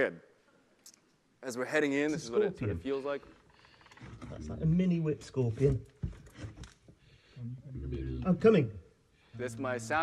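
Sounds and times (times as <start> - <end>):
faint knocks and scrapes: 3.3 - 7.2.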